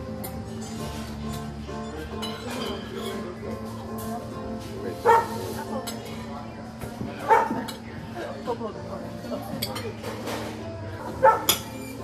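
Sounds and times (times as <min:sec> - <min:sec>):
cutlery clinking on plates: 0:00.2 - 0:04.2, 0:09.3 - 0:12.0.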